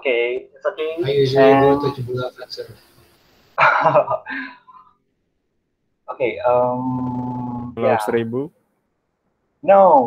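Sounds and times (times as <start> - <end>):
man laughing: 1.0 - 2.2, 3.6 - 4.7.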